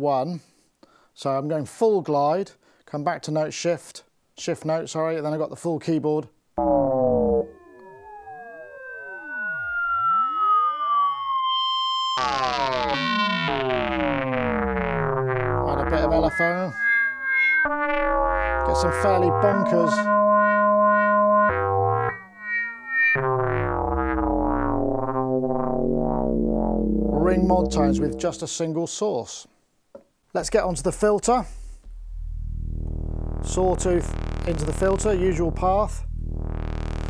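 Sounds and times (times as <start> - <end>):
gliding synthesizer tones: 6.6 - 28.5, 30.6 - 37.0.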